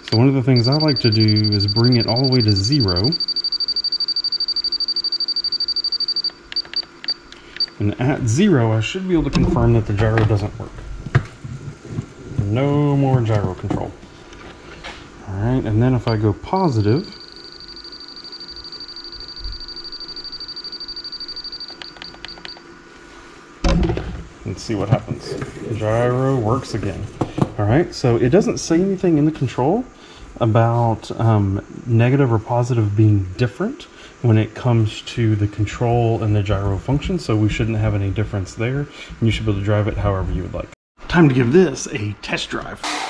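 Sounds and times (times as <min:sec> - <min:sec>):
faint steady hum: 0:00.0 - 0:42.9
high-pitched electronic tone pulsing: 0:00.5 - 0:06.3
keypad beeping: 0:00.6 - 0:07.7.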